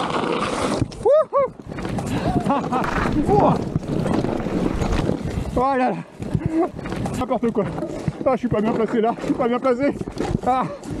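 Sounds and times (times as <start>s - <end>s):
wind on microphone: 1.7s - 5.6s
bike rattling over stones: 1.8s - 5.8s
tyres crunching on gravel: 2.8s - 5.3s.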